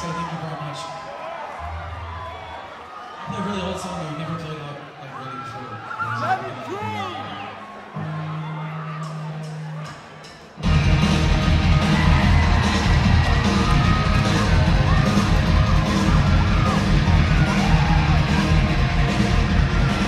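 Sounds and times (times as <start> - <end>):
live rock band playing: 8.1 - 20.0.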